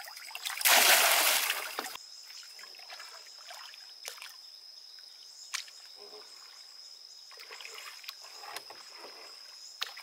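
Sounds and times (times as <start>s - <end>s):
oar swishing water: 7.3s - 10.0s.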